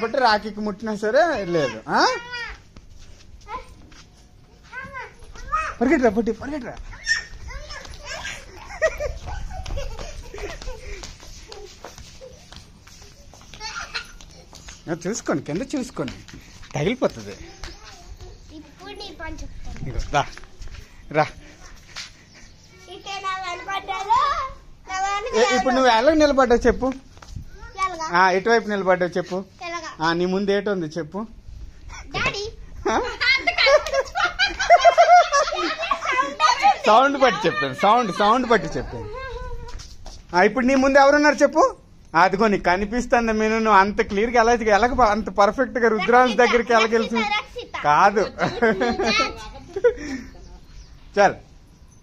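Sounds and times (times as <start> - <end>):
young children calling and shrieking: 1.0 - 15.0, 16.4 - 26.1, 27.2 - 28.3, 31.8 - 40.3, 45.9 - 50.2
people laughing: 8.2 - 12.5, 32.9 - 39.3, 48.2 - 50.4
woman laughing: 8.3 - 12.5, 32.8 - 36.7, 48.3 - 50.5.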